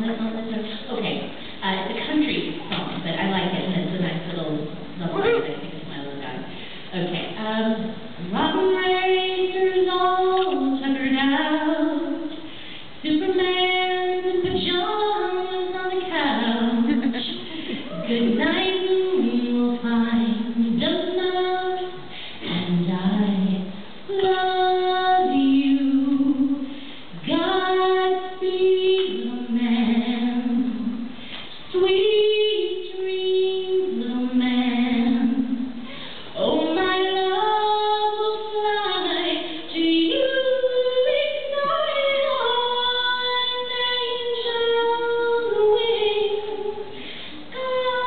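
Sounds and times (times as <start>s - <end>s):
woman singing unaccompanied: 6.9s - 12.3s, 13.0s - 31.1s, 31.7s - 35.8s, 36.4s - 48.0s.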